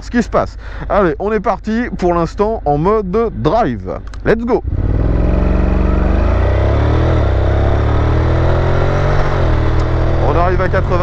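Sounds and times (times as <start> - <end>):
motorcycle engine at full throttle: 4.1 - 11.0.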